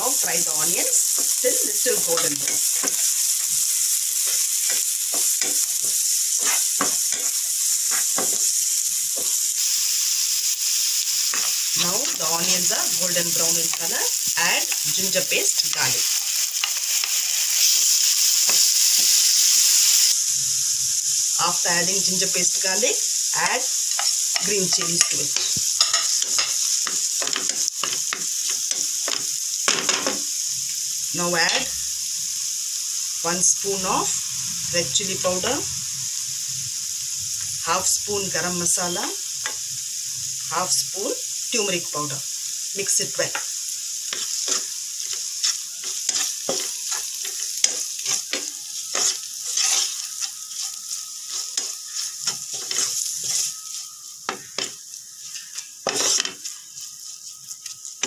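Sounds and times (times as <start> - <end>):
onions sizzling in hot oil: 0.0 - 58.0
wooden spatula scraping a pan: 45.4 - 53.8, 54.6 - 57.7.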